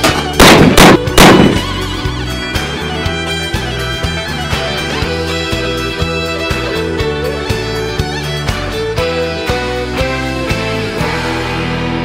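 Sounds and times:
country music: 0.0s - 12.0s.

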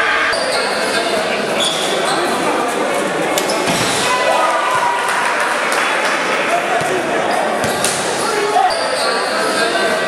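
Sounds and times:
spectators chattering: 0.0s - 10.0s
players shouting: 3.6s - 5.7s.

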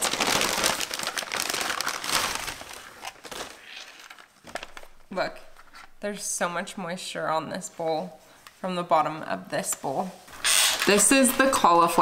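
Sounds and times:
aluminium foil crinkling: 0.0s - 6.0s.

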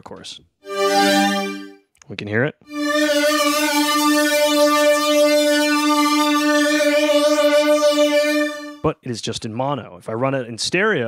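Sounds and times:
synthesizer holding long note: 0.6s - 1.8s, 2.7s - 8.9s.

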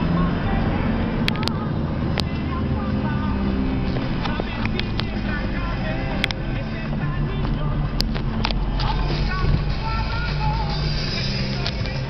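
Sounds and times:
car driving heard from inside: 0.0s - 12.0s
sharp clicks: 1.2s - 2.5s, 4.0s - 5.3s, 6.1s - 9.0s.

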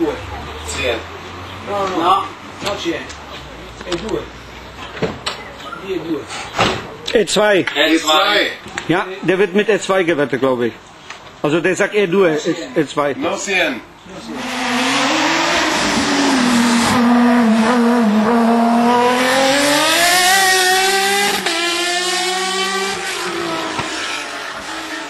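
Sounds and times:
racing car passing at full throttle: 14.2s - 25.0s.

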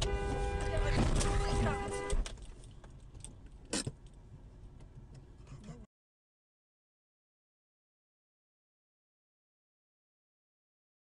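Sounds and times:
car horn blast: 0.0s - 2.3s
engine and road rumble: 0.0s - 5.9s.

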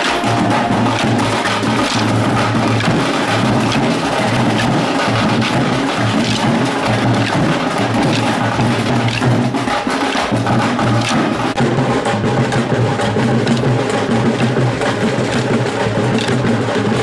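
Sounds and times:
wooden sticks clacking: 0.0s - 11.6s, 13.0s - 17.0s
percussive folk music with drums: 0.0s - 17.0s.

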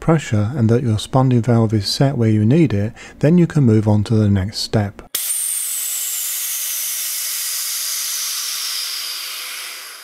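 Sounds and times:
gas hissing from valve: 5.2s - 10.0s.

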